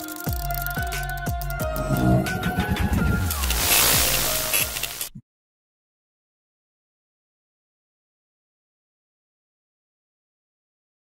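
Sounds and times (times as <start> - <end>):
electronic sting music: 1.6 - 5.1
whooshing sweep: 1.6 - 5.2.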